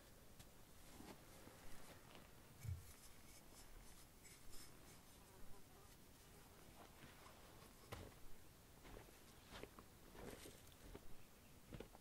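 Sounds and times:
faint light scratches: 0:02.6 - 0:06.0.

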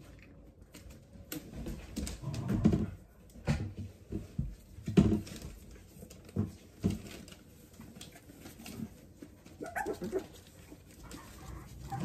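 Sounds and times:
puppies whimpering and whining: 0:09.4 - 0:12.0.

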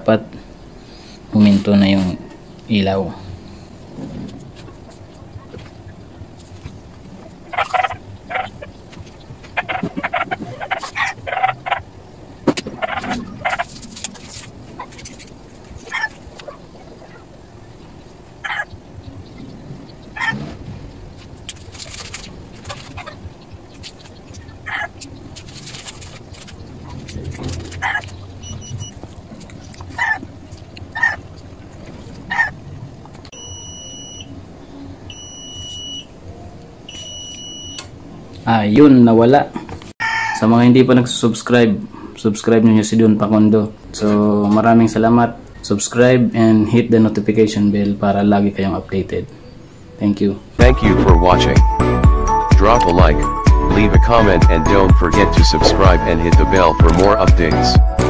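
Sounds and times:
electronic buzzer beeps: 0:28.4 - 0:29.0, 0:33.4 - 0:34.3, 0:35.1 - 0:36.1, 0:36.9 - 0:37.9.

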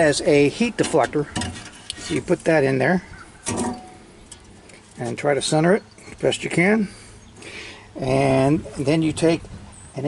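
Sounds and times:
metal scraping: 0:00.8 - 0:02.6, 0:03.4 - 0:05.1.

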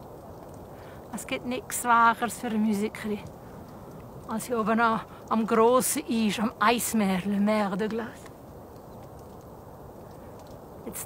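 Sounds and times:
faint open-air background noise: 0:00.0 - 0:11.0
person speaking: 0:01.1 - 0:03.4, 0:04.2 - 0:08.3.

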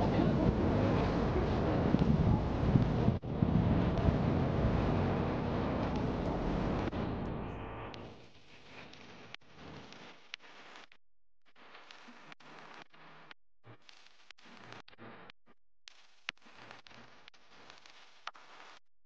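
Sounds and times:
wind buffeting microphone: 0:00.0 - 0:07.0
street noise: 0:00.0 - 0:08.2.

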